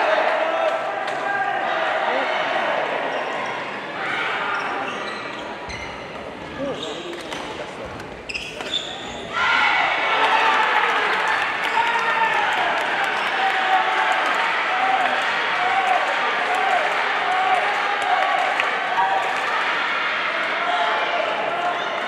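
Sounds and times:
crowd shouting and cheering: 0:00.0 - 0:05.7, 0:09.1 - 0:22.0
voices in a hall: 0:00.0 - 0:22.0
shoes squeaking on court floor: 0:04.5 - 0:09.3.

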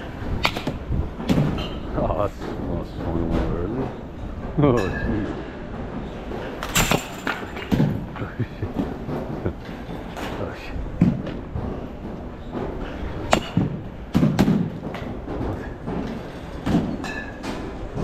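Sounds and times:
baseballs cracking and thumping: 0:00.0 - 0:02.7, 0:06.0 - 0:18.0.

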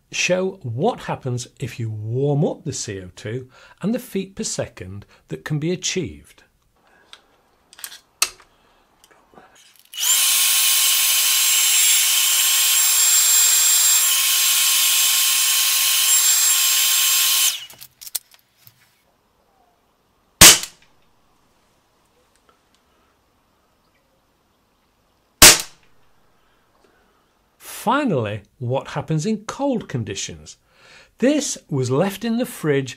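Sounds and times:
hot-air blower whining: 0:10.0 - 0:17.7
air pistol shots: 0:20.4 - 0:20.8, 0:25.4 - 0:25.9.

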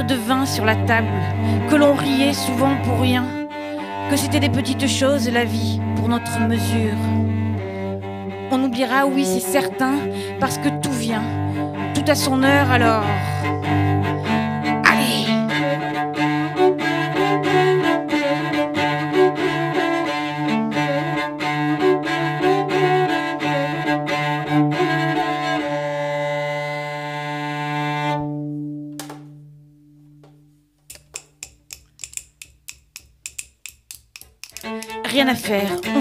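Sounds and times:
bowed cello melody: 0:00.0 - 0:36.0
quick sharp clicks: 0:30.9 - 0:35.0.

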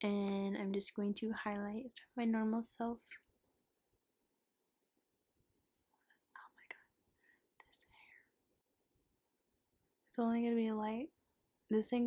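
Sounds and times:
faint whispering: 0:06.0 - 0:08.4.

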